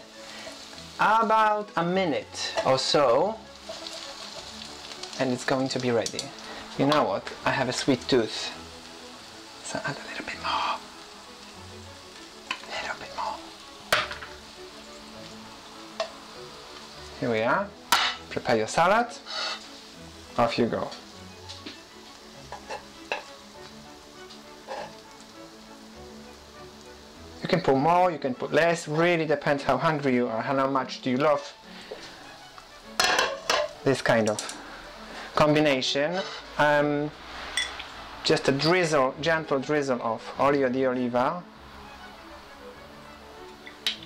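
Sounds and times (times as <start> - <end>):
vegetables sizzling in oil: 0.0 - 40.5, 41.4 - 44.0
metal utensil clinking on frying pan: 33.0 - 33.8
pan set on hob: 33.0 - 34.5.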